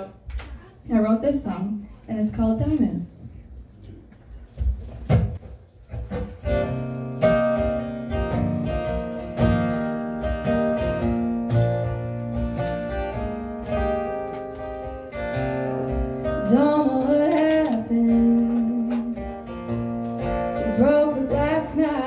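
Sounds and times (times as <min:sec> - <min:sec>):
acoustic guitar strumming chords: 0:05.9 - 0:22.0.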